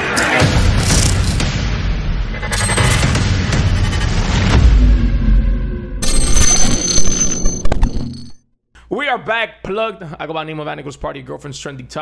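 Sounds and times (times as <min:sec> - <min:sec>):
high ringing tone: 0:06.0 - 0:08.4
sharp glitch clicks: 0:06.0 - 0:08.4.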